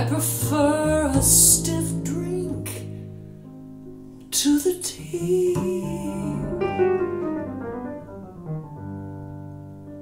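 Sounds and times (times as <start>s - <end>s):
piano chords ringing: 0.0s - 10.0s.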